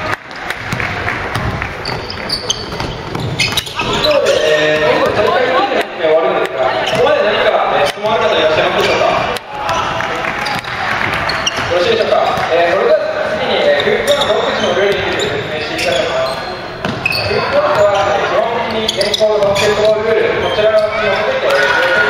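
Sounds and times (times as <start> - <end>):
players' voices in a large hall: 0.0 - 22.0
basketball bouncing on hardwood floor: 1.3 - 3.7.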